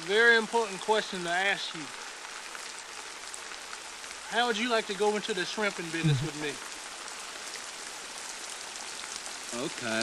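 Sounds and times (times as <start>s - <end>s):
steady rain hiss: 0.0s - 10.0s.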